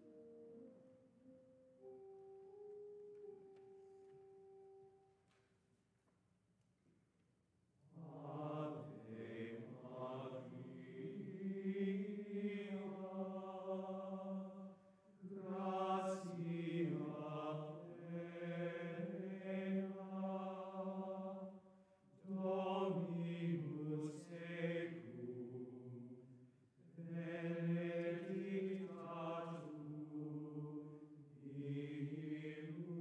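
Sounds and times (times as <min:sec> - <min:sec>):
choir singing chant-like melody: 0:07.9 - 0:33.0.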